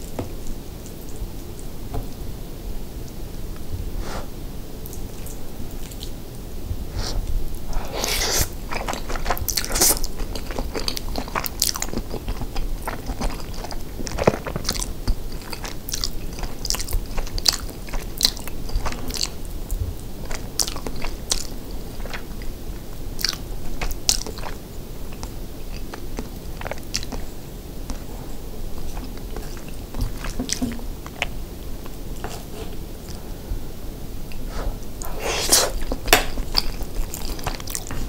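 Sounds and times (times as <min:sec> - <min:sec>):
wet chewing mouth sounds: 0:06.9 - 0:33.2, 0:34.3 - 0:38.0.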